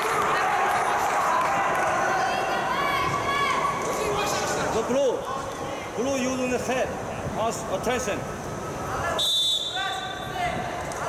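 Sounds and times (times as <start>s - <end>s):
referee's whistle blast: 9.2s - 10.4s.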